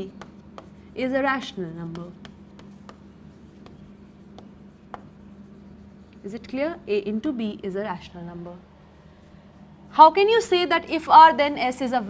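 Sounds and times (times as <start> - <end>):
chalk tapping and scratching: 0.0 - 7.0.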